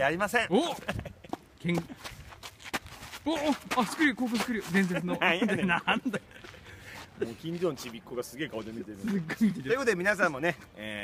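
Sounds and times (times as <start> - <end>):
footsteps on dirt: 0.7 - 5.2, 6.2 - 9.7
man's voice: 3.2 - 6.2, 7.2 - 11.0.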